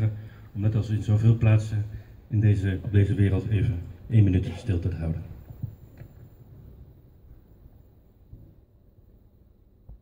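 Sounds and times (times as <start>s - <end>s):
low steady rumble and hiss: 0.0s - 10.0s.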